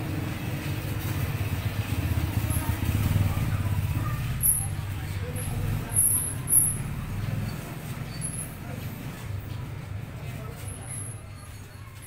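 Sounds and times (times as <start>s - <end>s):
steady low engine rumble: 0.0s - 12.0s.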